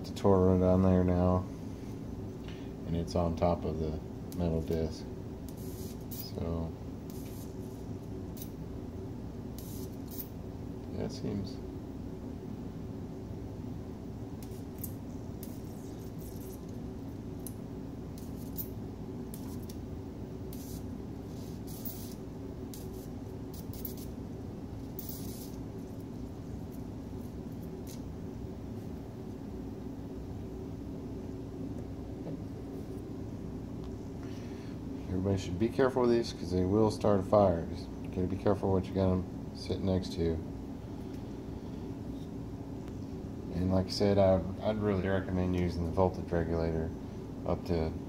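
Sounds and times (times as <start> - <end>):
steady low hum: 0.0 - 48.0
electric arc hiss and crackle: 4.3 - 8.7, 9.5 - 10.4, 14.3 - 28.1.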